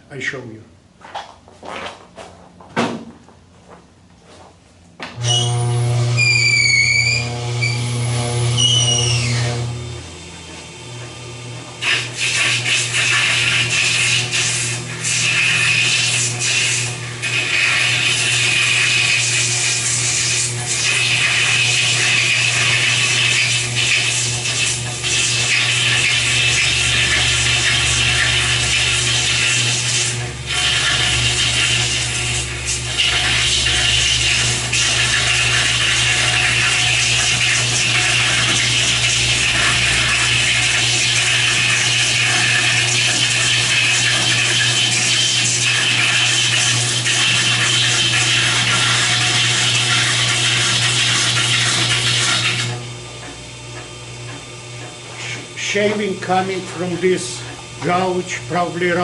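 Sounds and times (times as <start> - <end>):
lathe humming: 5.2 - 59.0.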